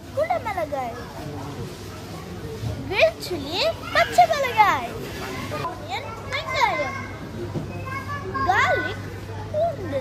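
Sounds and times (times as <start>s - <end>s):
boy speaking: 0.2s - 1.0s, 2.9s - 4.9s.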